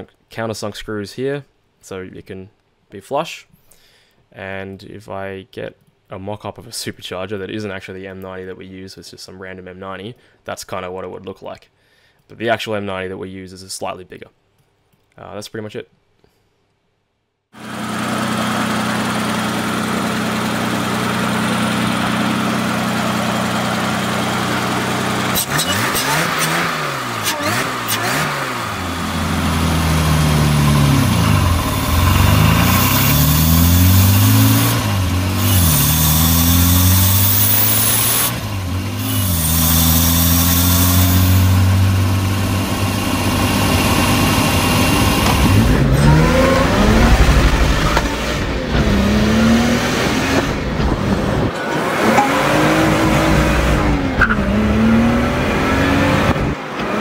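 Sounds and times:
car engine idling and revving: 17.6s - 57.0s.

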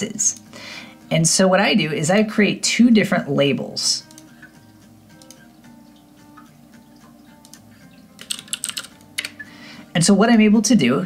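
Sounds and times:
quiet background music: 0.0s - 11.0s
typing on computer keyboard: 8.2s - 9.4s.

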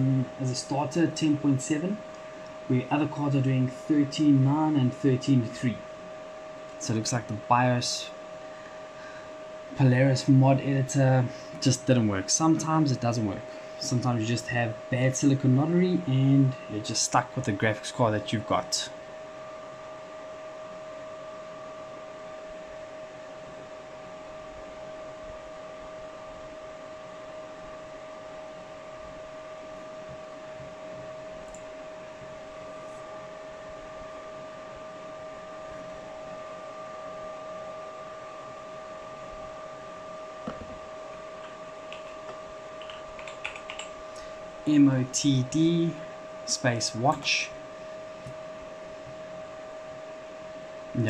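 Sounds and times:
computer fans whining: 0.0s - 51.0s
keyboard key taps: 41.9s - 43.9s.

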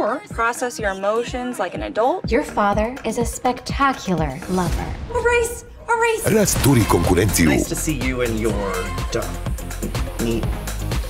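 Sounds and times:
woman speaking: 7.4s - 7.8s.

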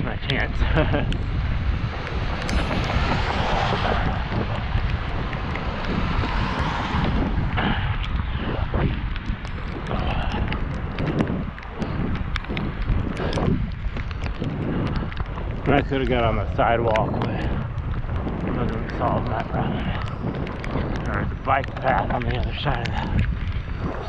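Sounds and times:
wind buffeting microphone: 0.0s - 24.0s
bike clicking over cracks: 0.1s - 24.0s
car passing on wet road: 2.0s - 8.2s.

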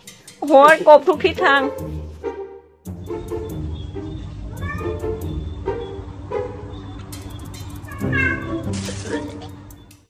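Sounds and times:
cat meowing: 4.4s - 5.2s, 7.8s - 8.6s.

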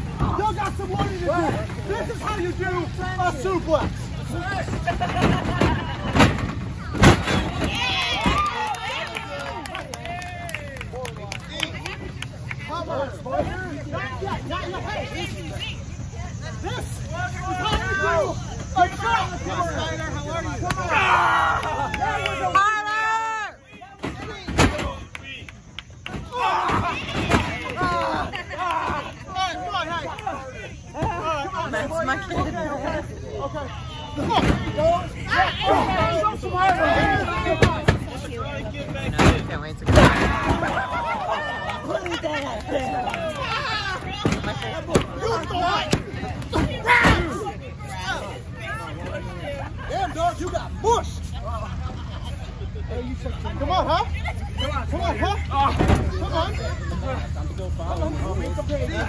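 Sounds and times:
people shouting: 0.0s - 10.8s, 16.5s - 25.1s, 26.0s - 38.8s, 39.9s - 49.2s
voices calling out and talking: 0.0s - 59.0s.

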